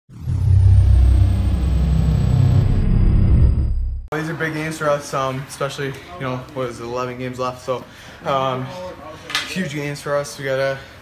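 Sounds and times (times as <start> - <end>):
deep rumble: 0.1 - 4.1
high tone gliding downward: 0.1 - 4.1.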